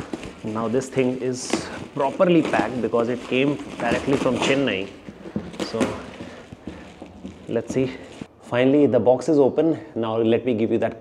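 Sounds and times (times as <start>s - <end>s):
plastic wrapping crinkling: 0.0s - 8.4s.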